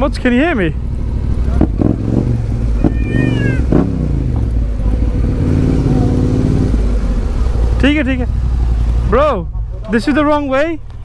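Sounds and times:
motorcycle engine running: 0:00.0 - 0:11.0
high-pitched falling cry: 0:02.8 - 0:03.7.

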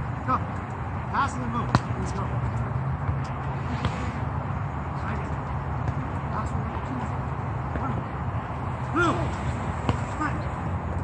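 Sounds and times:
distant voices: 0:00.0 - 0:11.0
ball bouncing on hard court: 0:09.8 - 0:10.2.

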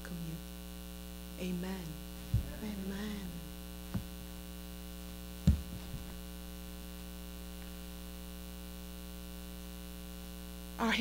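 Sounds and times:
electrical mains hum: 0:00.0 - 0:11.0
page turning knock: 0:05.4 - 0:06.2.

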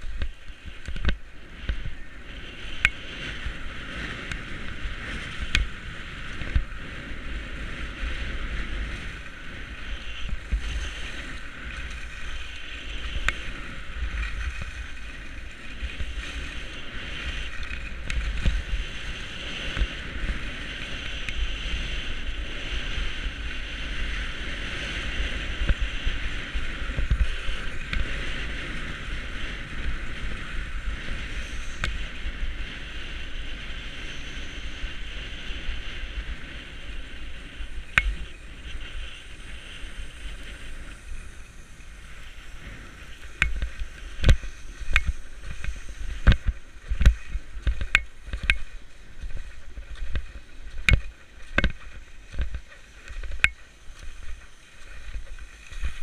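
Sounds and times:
skis scraping over snow: 0:00.0 - 0:56.0
wind rumbling on microphone: 0:00.0 - 0:56.0.

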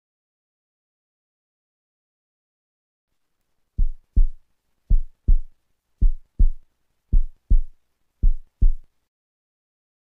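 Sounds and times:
heartbeat thumps: 0:03.8 - 0:08.9.

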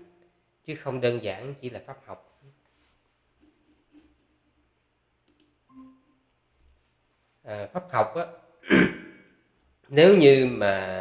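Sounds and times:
faint click: 0:05.2 - 0:05.6.

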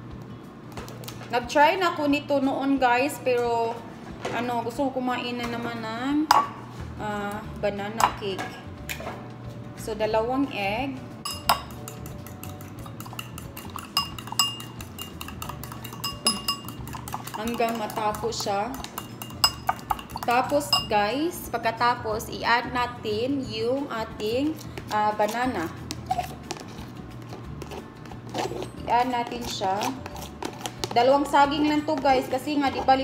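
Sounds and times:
fork clinking against ceramic bowl: 0:11.3 - 0:21.0.

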